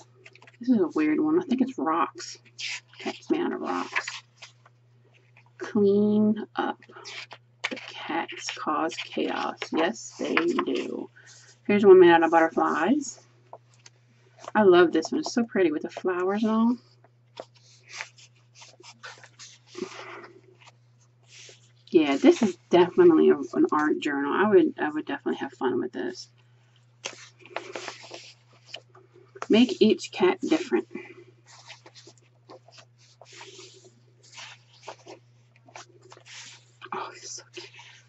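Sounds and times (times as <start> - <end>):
book pages rustling: 0.0 - 5.6, 6.8 - 24.0, 26.4 - 38.0
steady low hum: 0.0 - 38.0.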